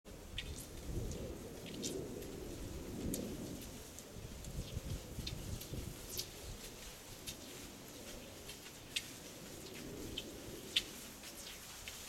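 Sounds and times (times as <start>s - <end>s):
wind rumbling on microphone: 0.1s - 12.0s.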